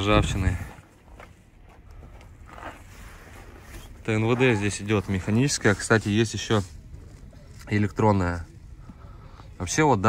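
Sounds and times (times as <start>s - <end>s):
low steady outdoor rumble: 0.0s - 10.0s.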